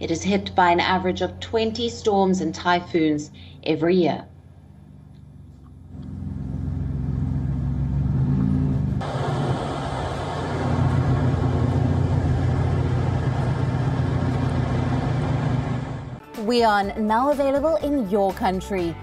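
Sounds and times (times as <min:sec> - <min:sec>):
low outdoor rumble: 0:00.0 - 0:16.2.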